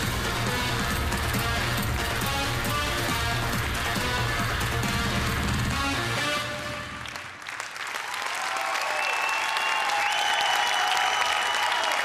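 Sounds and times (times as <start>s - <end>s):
music with heavy bass beat: 0.0s - 6.2s
audience applause: 6.7s - 12.0s.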